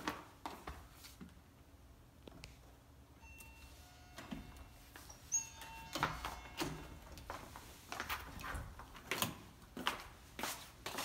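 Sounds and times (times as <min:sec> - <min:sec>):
electronic door lock chime beeps: 0:03.2 - 0:07.2.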